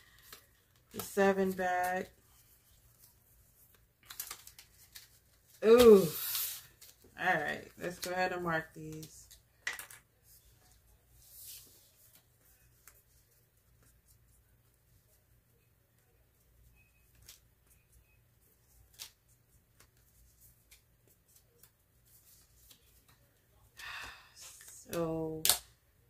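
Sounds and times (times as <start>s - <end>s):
paper rustling: 0.0s - 8.2s.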